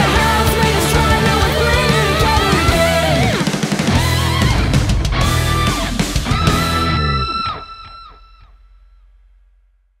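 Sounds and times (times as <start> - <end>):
electric guitar and bass chord ringing: 0.0 - 8.0.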